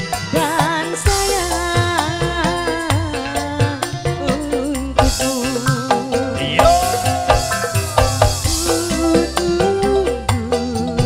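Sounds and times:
keyboards: 0:00.0 - 0:11.0
woman singing: 0:00.3 - 0:11.0
hand-drum beats: 0:00.6 - 0:11.0
cymbal crash: 0:06.5 - 0:09.1.

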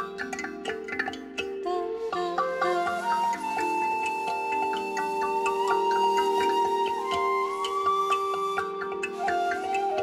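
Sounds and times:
ticking repeated keyboard notes: 0:00.0 - 0:10.0
held high flute-like note: 0:01.5 - 0:10.0.

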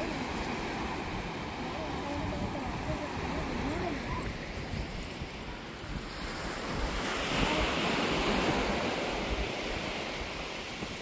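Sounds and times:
surf washing on beach: 0:00.0 - 0:11.0
wind buffeting microphone: 0:00.0 - 0:11.0.

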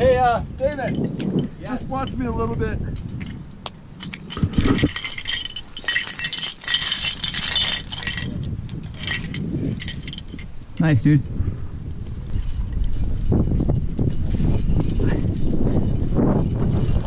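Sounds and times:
metal climbing gear jingling: 0:00.6 - 0:17.0.

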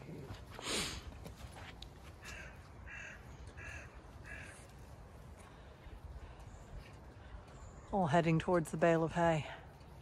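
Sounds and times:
crow cawing faintly: 0:02.2 - 0:06.4.

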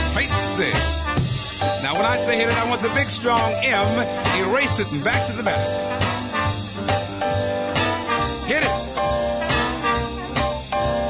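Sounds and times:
jazz combo playing: 0:00.0 - 0:11.0.

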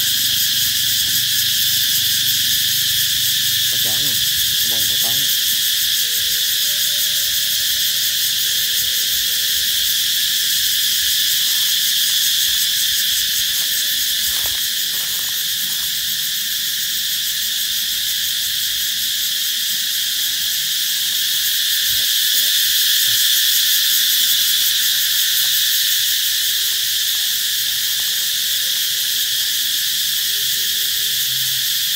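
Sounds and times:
cicadas singing: 0:00.0 - 0:31.9.

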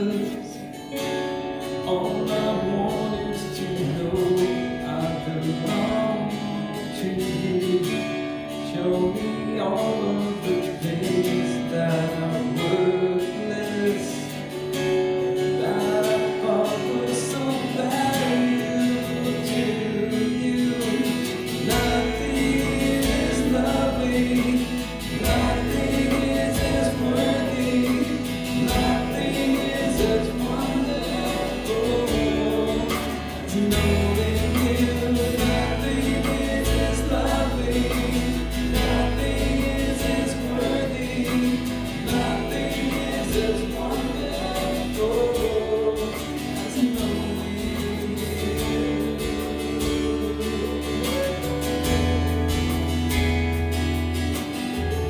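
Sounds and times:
acoustic and electric guitars: 0:00.0 - 0:55.0
keyboard: 0:00.0 - 0:55.0
low bass notes: 0:14.4 - 0:55.0
voices singing together: 0:15.4 - 0:53.0.

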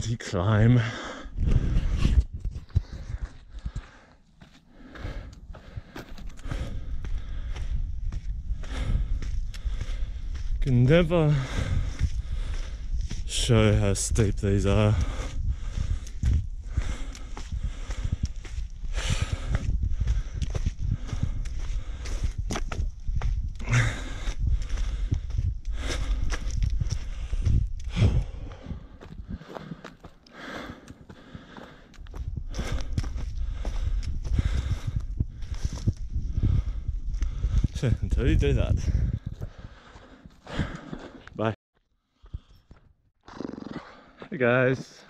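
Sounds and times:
running footsteps crunching on trail: 0:00.6 - 0:45.0
low rumble: 0:32.1 - 0:40.0.

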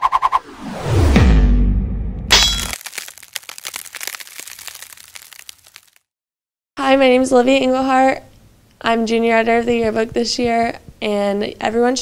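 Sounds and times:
sharp hit: 0:02.3 - 0:02.8
crackling trail: 0:02.7 - 0:06.0.

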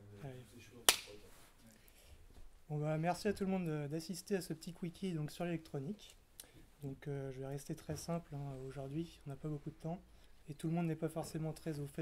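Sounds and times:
sharp hand clap: 0:00.9 - 0:01.2.

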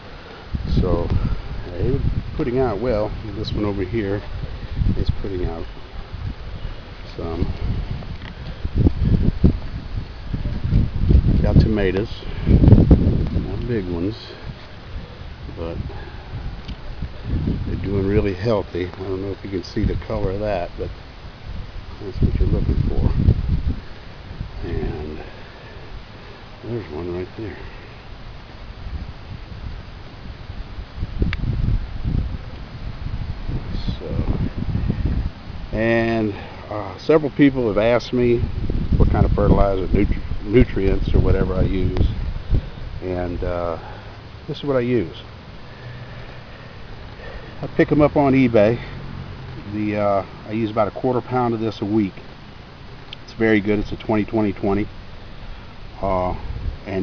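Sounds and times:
wind on microphone: 0:00.0 - 0:51.8, 0:53.0 - 0:57.0.

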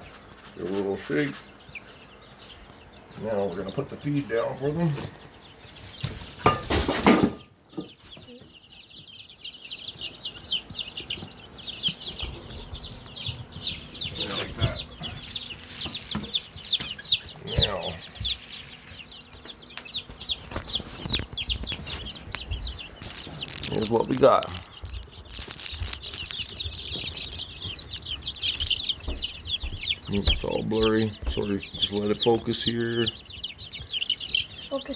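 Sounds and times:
chicks peeping: 0:00.0 - 0:34.9.

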